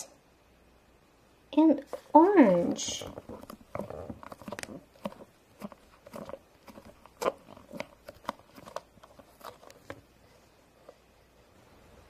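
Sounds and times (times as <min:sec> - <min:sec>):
plastic play dough tools tapping: 0:01.9 - 0:10.0.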